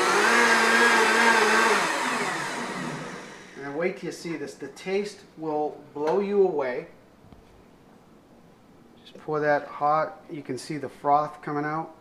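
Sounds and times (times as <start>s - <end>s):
blender motor whine: 0.0s - 3.6s
blender spinning down: 0.0s - 3.6s.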